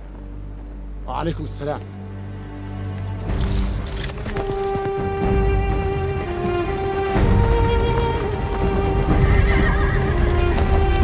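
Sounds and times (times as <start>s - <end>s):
orchestral film score: 0.0s - 11.0s
horses galloping: 3.6s - 11.0s
horse whinnying: 9.2s - 10.3s.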